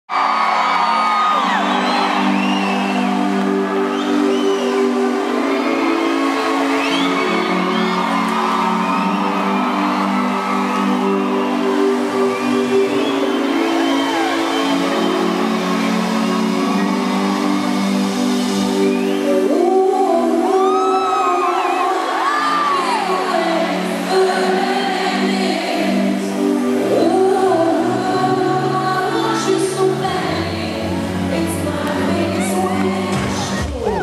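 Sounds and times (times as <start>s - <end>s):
crowd screaming and whooping: 0.1s - 31.1s, 31.9s - 34.0s
concert music through speakers: 0.1s - 34.0s.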